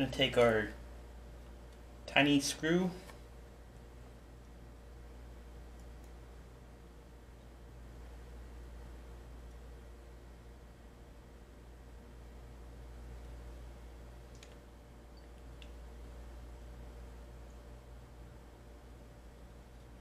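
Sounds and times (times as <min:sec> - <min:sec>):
faint steady low hum: 0:00.0 - 0:20.0
small faint clicks: 0:01.4 - 0:01.9, 0:05.7 - 0:06.2, 0:14.3 - 0:15.8.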